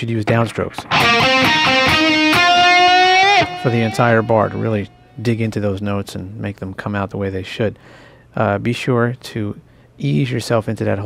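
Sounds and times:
electric guitar single notes: 0.6s - 5.2s.

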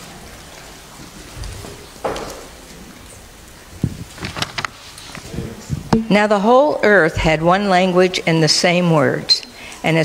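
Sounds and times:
room noise: 0.0s - 10.0s
microphone handling bump: 3.8s - 4.6s, 5.2s - 6.1s
paper pages rustling: 3.8s - 5.8s.

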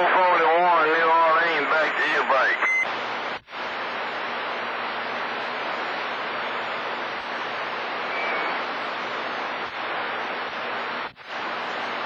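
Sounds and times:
distorted warbling radio voice: 0.0s - 2.8s
faint hum: 0.0s - 12.0s
radio static hiss: 0.0s - 12.0s
short steady beep: 8.1s - 8.6s.

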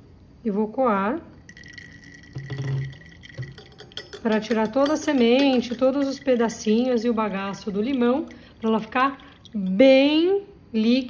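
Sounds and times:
liquid pouring through a strainer: 1.4s - 9.8s.

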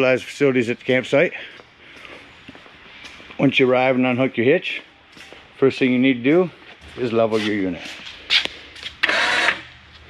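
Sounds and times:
electric jack motor whirring: 9.0s - 9.7s.

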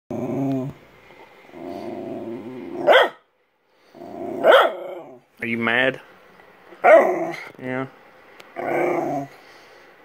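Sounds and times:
dog growling: 0.1s - 0.8s, 1.5s - 3.1s, 3.9s - 5.3s, 6.8s - 7.5s, 8.6s - 9.4s
dog barking sharply: 2.8s - 3.2s, 4.4s - 4.8s.

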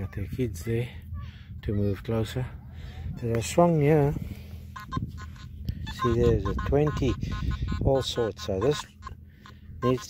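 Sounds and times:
metal detector beeps: 4.7s - 10.0s.

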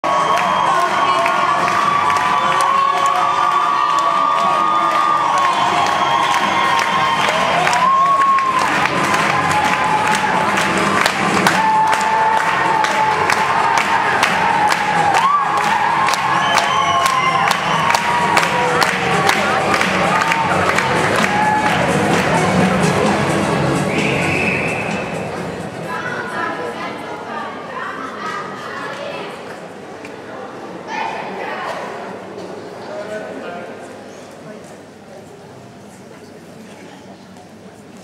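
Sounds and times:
crowd cheering and shouting: 0.0s - 26.7s.

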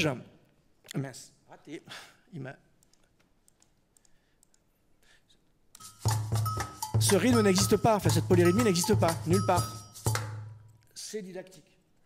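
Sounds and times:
faint clicks: 2.8s - 4.7s
batucada percussion rhythm: 5.8s - 10.8s.

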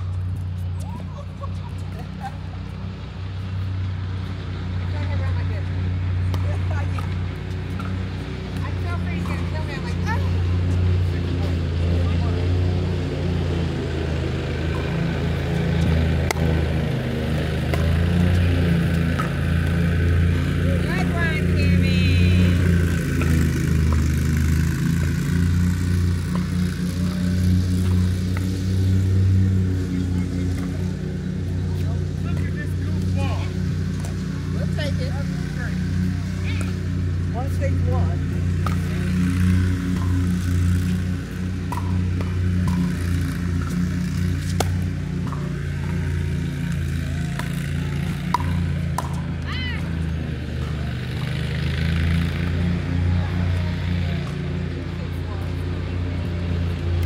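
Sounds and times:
paddles hitting plastic ball: 41.7s - 45.7s
faint voices: 45.1s - 57.0s.

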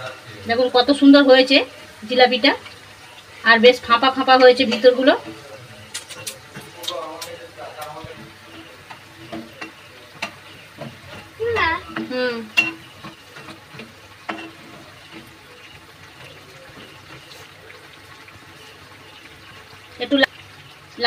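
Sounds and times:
frying in hot oil sizzling: 0.0s - 21.0s.

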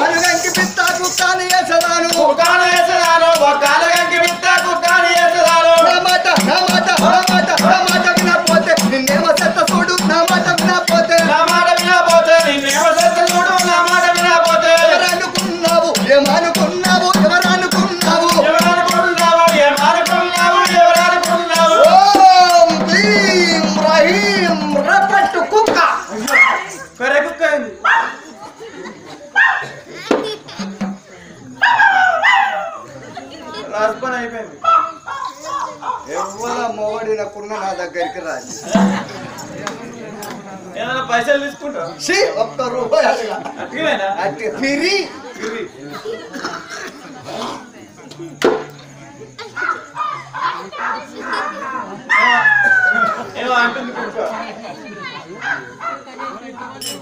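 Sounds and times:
people talking: 0.0s - 57.0s.

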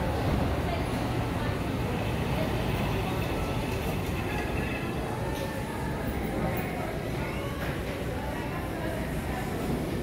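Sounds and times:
faint voices: 0.0s - 10.0s
low rumbling background noise: 0.0s - 10.0s.

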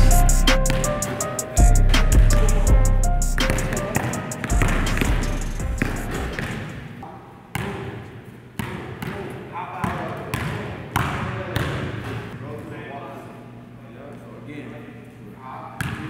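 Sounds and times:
basketball bouncing on gym floor: 0.7s - 0.9s, 3.4s - 6.7s, 9.8s - 12.2s.

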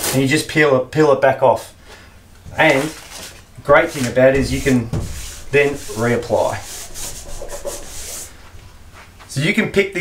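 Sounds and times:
hand rubbing decal on window: 3.7s - 8.6s.

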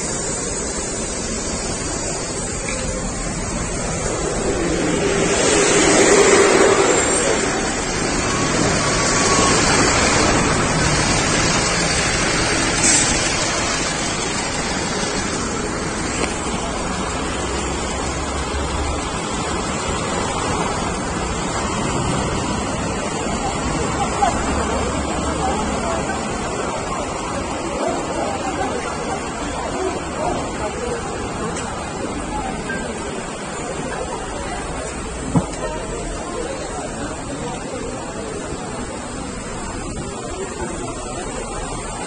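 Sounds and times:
indistinct voices: 0.0s - 42.0s
rushing street noise: 0.0s - 42.0s.

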